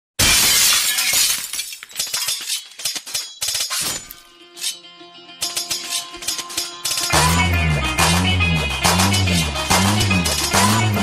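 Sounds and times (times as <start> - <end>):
glass shattering: 0.2 - 4.8, 5.4 - 7.4
glass pieces tinkling: 0.3 - 4.8.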